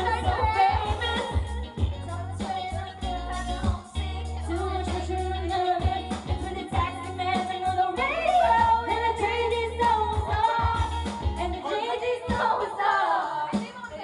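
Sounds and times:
pop backing track with bass: 0:00.0 - 0:14.0
woman singing karaoke: 0:00.0 - 0:14.0.

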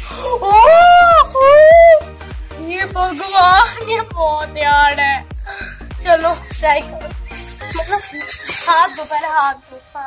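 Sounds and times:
high voice wailing: 0:00.4 - 0:02.0.

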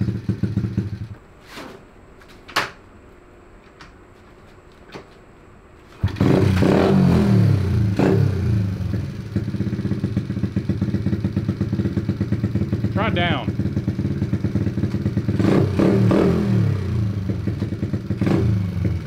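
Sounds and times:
mini bike engine revving and idling: 0:00.0 - 0:01.2, 0:06.0 - 0:19.0.

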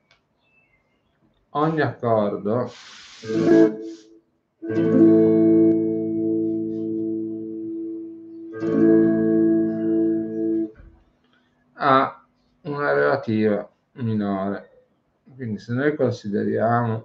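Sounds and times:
electric guitar chords ringing: 0:03.2 - 0:04.0, 0:04.6 - 0:10.8.

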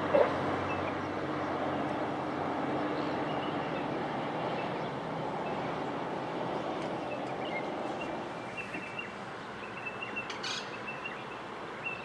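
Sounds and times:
rushing outdoor noise: 0:00.0 - 0:12.0.

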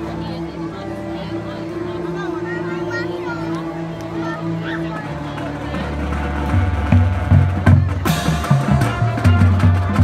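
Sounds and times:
marching band low brass: 0:00.0 - 0:10.0
drum hits on a steady beat: 0:05.4 - 0:10.0.

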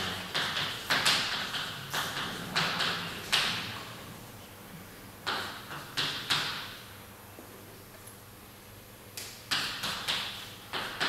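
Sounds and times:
chalk tapping on blackboard: 0:00.0 - 0:03.6, 0:09.5 - 0:11.0.

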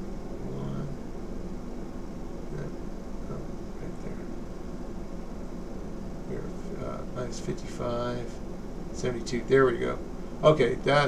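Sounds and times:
room hum and hiss: 0:00.0 - 0:11.0
faint murmurs: 0:02.4 - 0:04.4, 0:06.2 - 0:08.4.

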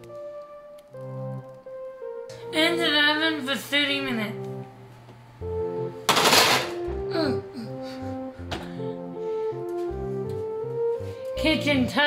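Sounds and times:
background music sustained notes: 0:00.0 - 0:12.0.

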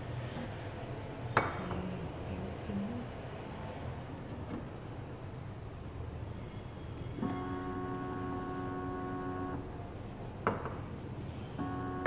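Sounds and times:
pump running with steady whine: 0:07.0 - 0:10.2, 0:11.3 - 0:12.0.

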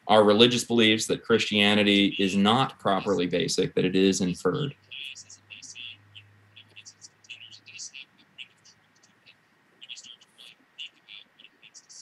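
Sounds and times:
broken man's speech: 0:00.1 - 0:04.8.

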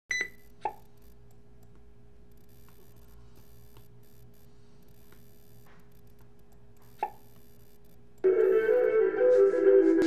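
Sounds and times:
low electrical hum: 0:00.1 - 0:09.2.

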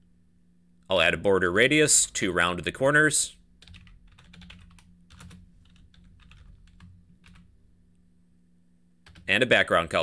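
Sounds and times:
low steady hum: 0:00.0 - 0:10.0
computer keyboard typing: 0:03.6 - 0:07.5, 0:09.0 - 0:09.3.

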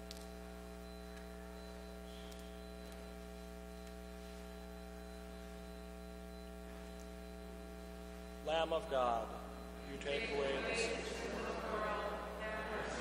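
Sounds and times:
electrical mains hum: 0:00.0 - 0:13.0
faint ticks: 0:01.1 - 0:04.5.

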